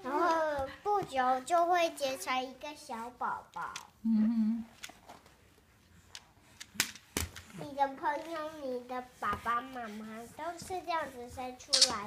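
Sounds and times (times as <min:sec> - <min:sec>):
person humming: 0:04.0 - 0:04.7.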